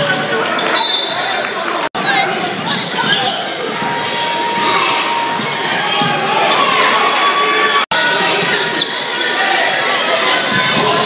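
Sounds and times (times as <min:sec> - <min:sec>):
crowd voices: 0:00.0 - 0:11.0.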